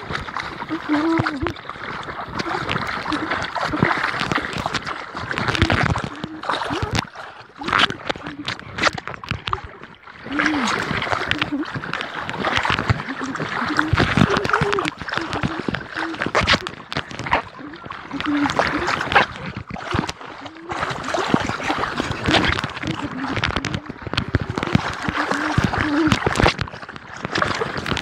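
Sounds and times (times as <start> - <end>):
water splashing and sloshing: 0.0 - 28.0.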